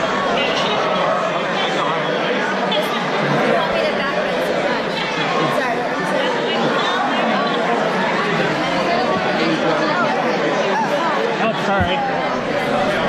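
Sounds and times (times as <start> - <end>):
babble of overlapping voices: 0.0 - 13.0.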